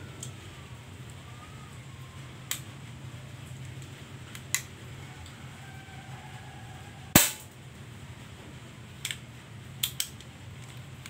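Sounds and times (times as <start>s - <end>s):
gunshot with ringing tail: 7.2s - 7.5s.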